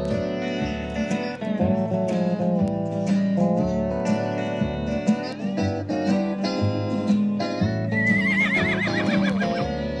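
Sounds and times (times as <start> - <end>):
acoustic guitar music: 0.0 - 10.0
horse whinnying: 7.9 - 9.8.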